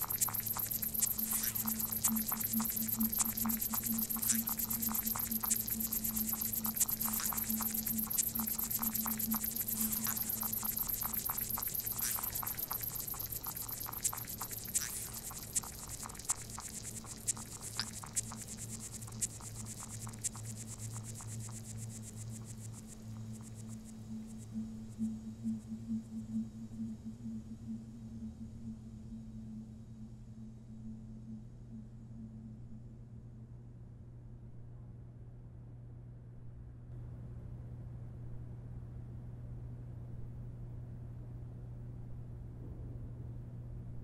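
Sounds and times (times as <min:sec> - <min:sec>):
crackle of fine clicks and hiss: 0:00.0 - 0:25.0
soft electronic pulses: 0:00.0 - 0:33.0
steady low electronic hum: 0:00.0 - 0:35.7.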